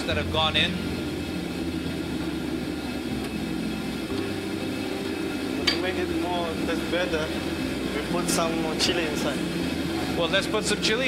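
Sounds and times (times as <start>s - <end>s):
gas burner roaring: 0.0s - 11.0s
ventilation running: 0.0s - 11.0s.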